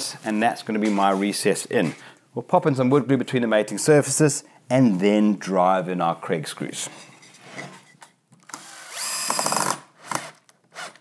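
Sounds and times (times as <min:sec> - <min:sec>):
cordless drill driving screw: 0:08.4 - 0:11.0.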